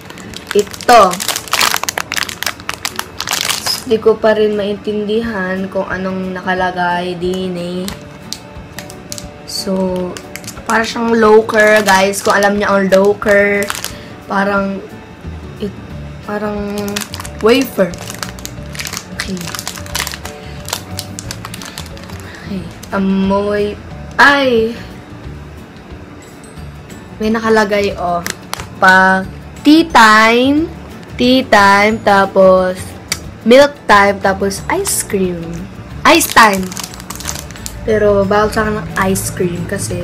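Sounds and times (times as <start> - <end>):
plastic snack wrapper crinkling: 0.0 - 4.0, 7.8 - 14.1, 16.6 - 23.0, 28.2 - 28.8, 36.1 - 37.8
light background music: 0.0 - 40.0.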